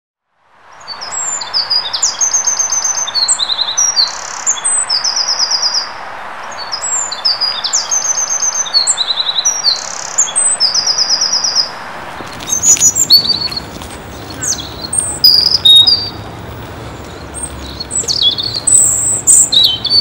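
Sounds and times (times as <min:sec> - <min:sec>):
background hiss: 0:00.4 - 0:20.0
bird singing high trills: 0:00.7 - 0:16.2, 0:17.0 - 0:20.0.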